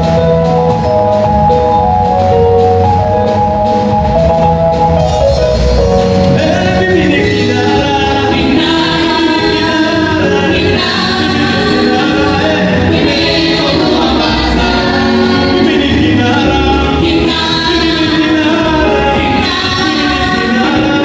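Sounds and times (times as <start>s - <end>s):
low musical accompaniment: 0.0s - 21.0s
group singing in harmony: 6.2s - 21.0s.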